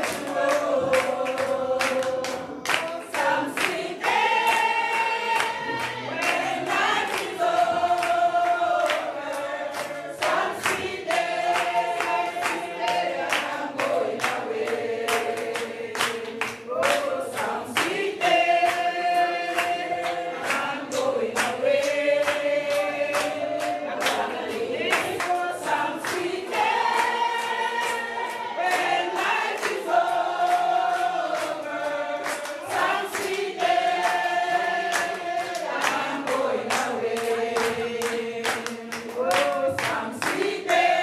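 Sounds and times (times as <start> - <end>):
congregation singing in unison: 0.0 - 41.0
handclaps: 0.0 - 41.0.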